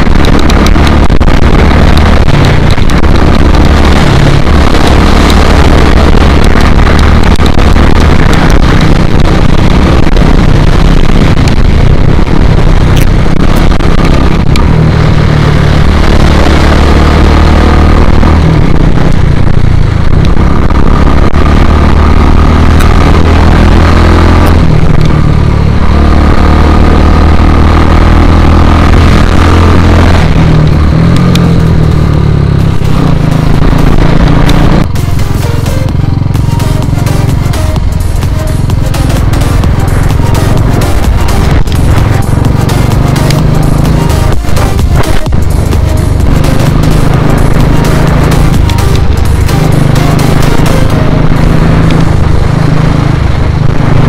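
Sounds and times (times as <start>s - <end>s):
motorcycle engine running: 0.0s - 54.0s
electronic beat music: 32.6s - 52.4s.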